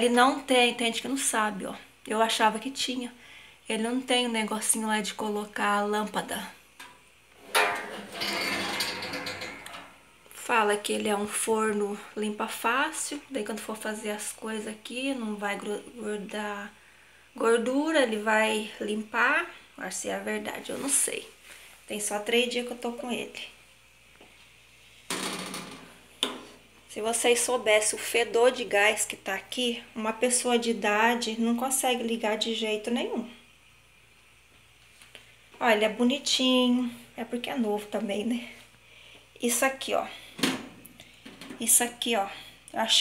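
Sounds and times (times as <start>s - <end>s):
oven door clatter: 7.4s - 10.0s
oven door hinge scraping: 7.4s - 10.0s.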